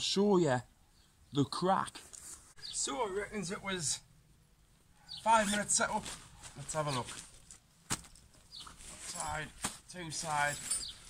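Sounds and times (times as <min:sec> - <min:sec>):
tent bag handling: 0:05.2 - 0:11.0.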